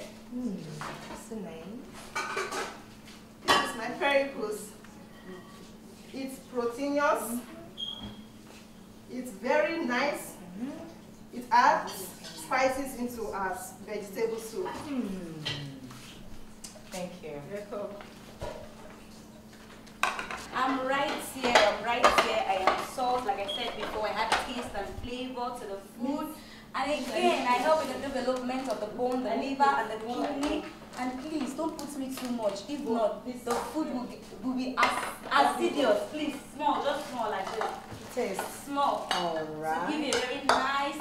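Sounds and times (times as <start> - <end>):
cookware and utensils clinking: 2.1 - 2.8.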